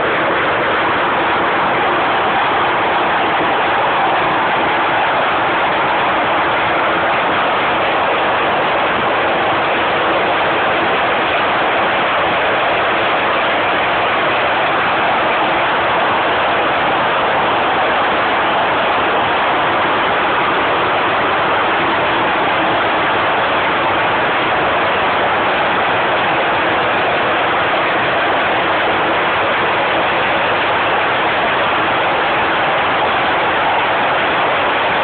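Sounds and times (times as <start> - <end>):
braiding machine running: 0.0 - 35.0.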